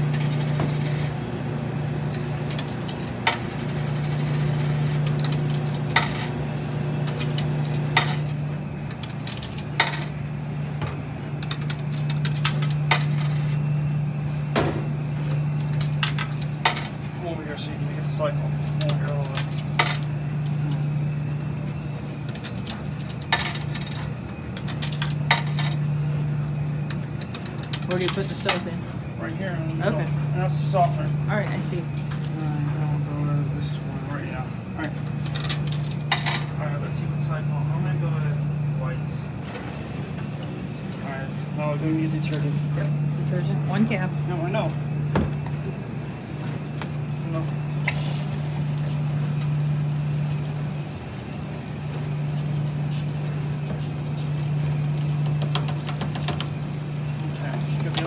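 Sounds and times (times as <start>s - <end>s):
low machine hum: 0.0s - 58.0s
coins clinking into coin box: 22.3s - 25.8s.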